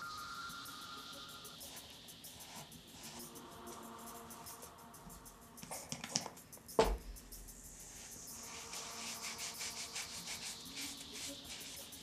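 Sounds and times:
wet paper towel rubbing skin: 8.1 - 12.0.

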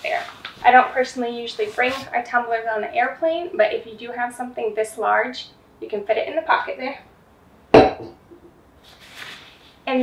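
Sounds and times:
steel tumbler knocking on surface: 7.8 - 8.4.

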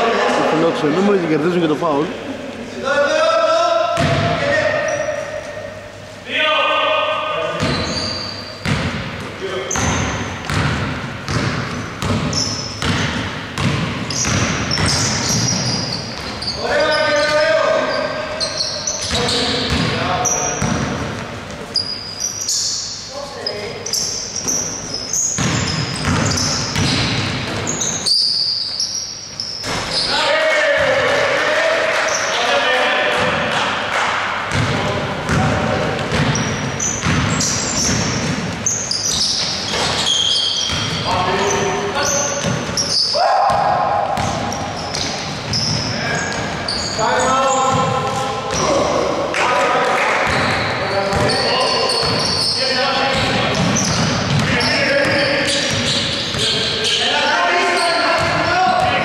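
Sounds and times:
basketball bouncing on wooden floor: 4.0 - 4.4, 8.6 - 16.4, 19.0 - 20.0, 20.6 - 21.3, 25.4 - 27.8, 34.5 - 40.0, 40.6 - 41.2, 42.4 - 42.8, 43.5 - 46.5, 53.1 - 56.5
players shouting: 30.0 - 33.8, 42.8 - 44.6.

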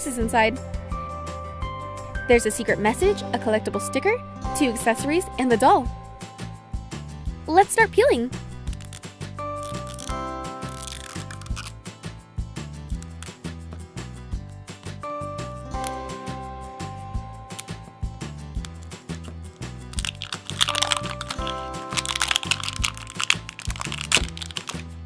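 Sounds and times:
light background music: 0.0 - 25.0
plastic wrapper crinkling: 8.6 - 11.8, 12.9 - 13.4, 18.6 - 18.9, 19.5 - 25.0.

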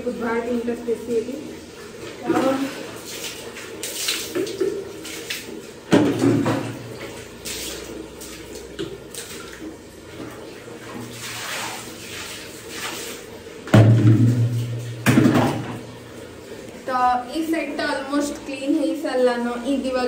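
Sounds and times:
water splashing on tiled wall: 2.0 - 16.2
water scooped from bucket: 10.8 - 13.3.

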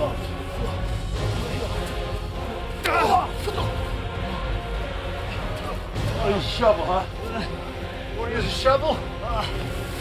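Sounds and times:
background music: 0.0 - 10.0
man shouting: 2.8 - 3.4.

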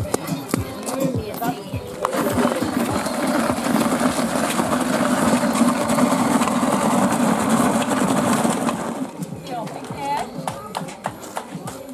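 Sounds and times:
tyre scraping over gravel: 1.8 - 9.6.

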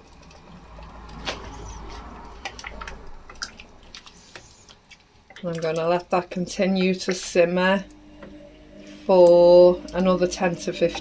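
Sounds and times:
stew sloshing while stirred: 0.0 - 11.0.

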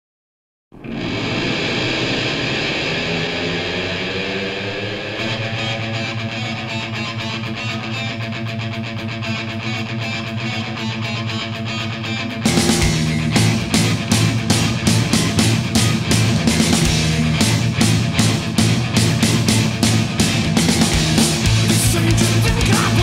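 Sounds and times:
heavy metal distorted guitar: 0.8 - 23.0.

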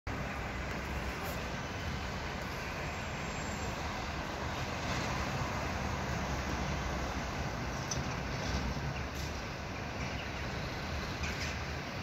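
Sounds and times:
distant street traffic: 0.1 - 12.0.

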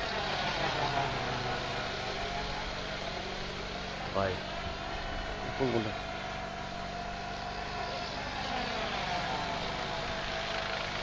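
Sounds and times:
model helicopter motor whine: 0.0 - 11.0.

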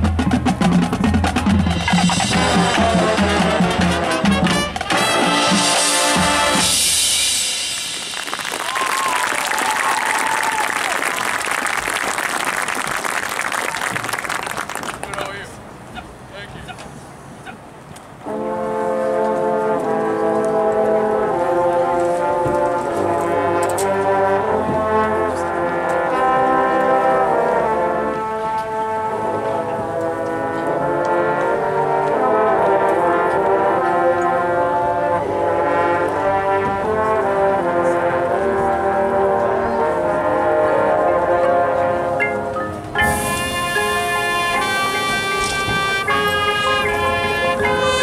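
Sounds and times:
brass band playing chords: 0.0 - 8.6, 18.2 - 48.0.

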